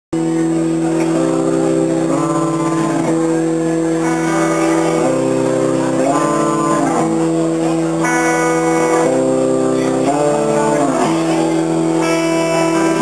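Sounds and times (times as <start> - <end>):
electric guitar chords: 0.1 - 13.0
live rock band playing: 0.2 - 13.0.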